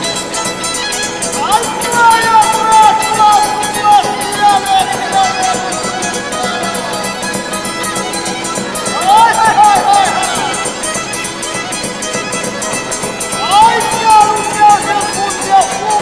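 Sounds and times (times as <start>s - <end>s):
fiddle playing: 0.0s - 16.0s
man singing: 1.4s - 5.9s, 8.9s - 10.6s, 13.4s - 16.0s.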